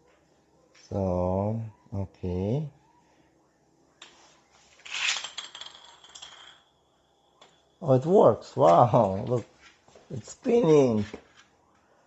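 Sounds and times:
plastic top clattering on tile: 4.8 - 6.7
spinning top high whirring ring: 4.8 - 6.9.

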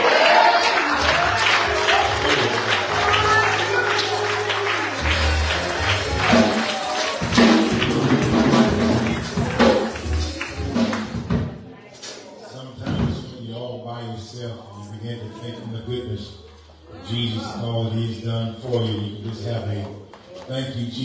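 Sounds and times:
voices calling out or singing: 0.0 - 7.6
church praise music: 0.0 - 21.0
hand clapping: 0.6 - 11.2.

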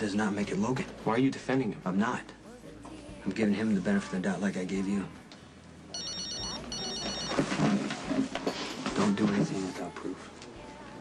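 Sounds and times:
phone ringing with electronic trill: 5.9 - 7.8.

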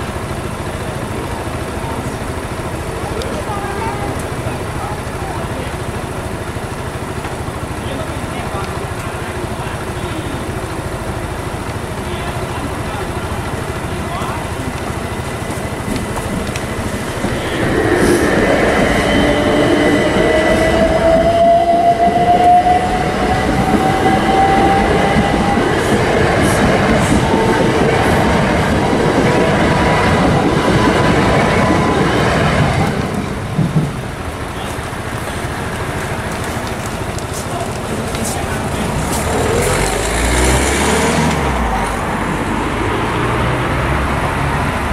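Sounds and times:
traffic background: 0.0 - 44.9
train motor whine: 0.0 - 44.9
train rail and wheel noise: 0.0 - 44.9.

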